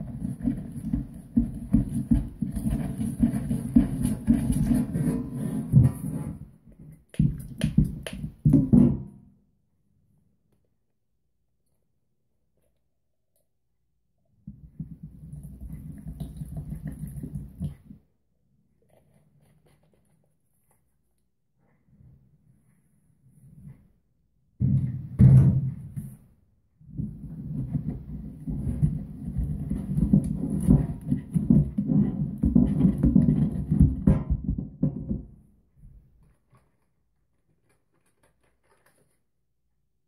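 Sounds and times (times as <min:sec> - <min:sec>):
dull knocks of stirring in cup: 0:07.1 - 0:08.9.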